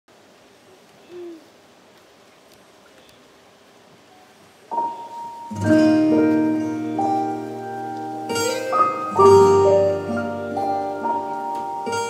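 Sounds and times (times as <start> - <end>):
faint outdoor background noise: 0.1 - 12.0.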